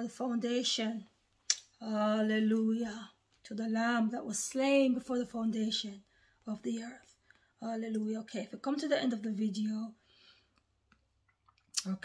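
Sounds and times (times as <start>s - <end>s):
woman speaking: 0.0s - 1.1s, 1.8s - 10.0s
mouth clicks: 1.4s - 1.7s
woman breathing: 6.1s - 6.4s, 10.0s - 10.6s.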